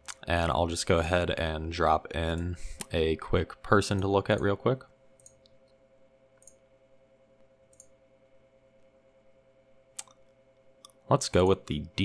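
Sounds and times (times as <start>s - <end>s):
faint steady hum: 0.0s - 12.0s
computer mouse clicks: 5.2s - 5.8s, 6.4s - 6.6s, 7.7s - 8.0s, 9.9s - 11.8s.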